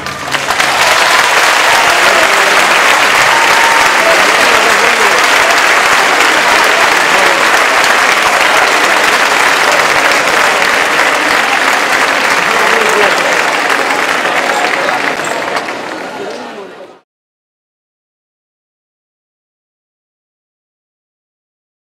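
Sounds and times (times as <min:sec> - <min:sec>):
audience applauding: 0:00.0 - 0:16.8.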